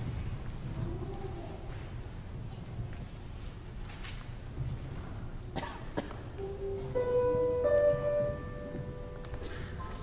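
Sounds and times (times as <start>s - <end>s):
low hum of concert hall: 0.0s - 10.0s
person coughing: 5.5s - 6.2s, 9.4s - 9.8s.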